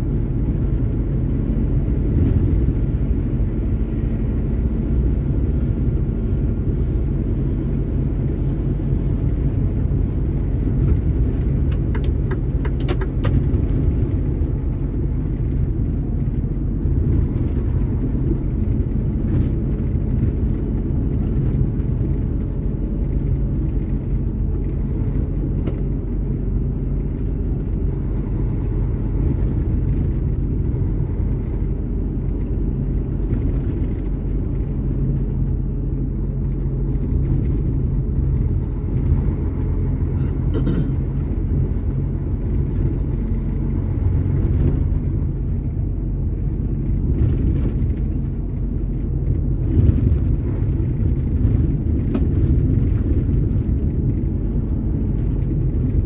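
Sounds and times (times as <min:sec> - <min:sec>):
truck engine and tyre rumble: 0:00.0 - 0:56.0.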